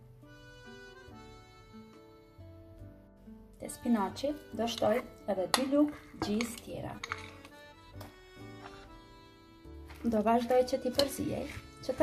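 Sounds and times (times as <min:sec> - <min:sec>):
soft instrumental music: 0:00.0 - 0:12.0.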